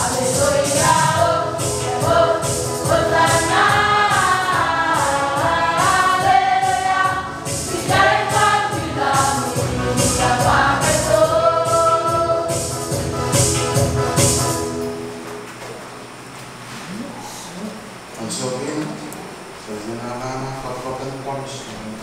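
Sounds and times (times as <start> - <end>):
group singing a hymn: 0.0 - 14.8
high shaker rhythm: 0.0 - 14.9
electronic keyboard: 0.0 - 15.9.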